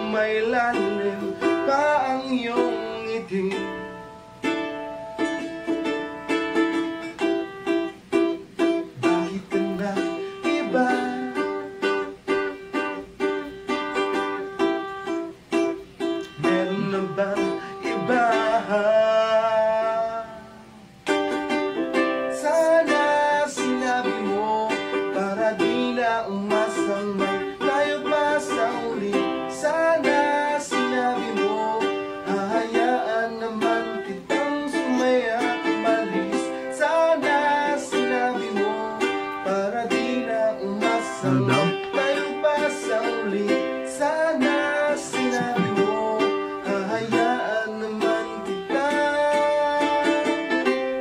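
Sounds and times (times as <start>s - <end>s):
man singing: 0.0s - 4.2s, 8.6s - 12.1s, 16.2s - 21.0s, 22.2s - 51.0s
ukulele strumming: 0.0s - 51.0s.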